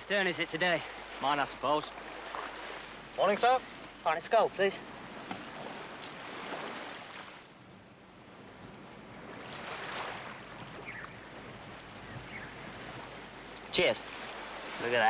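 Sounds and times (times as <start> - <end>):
sea surf washing on beach: 0.0 - 7.5, 8.5 - 15.0.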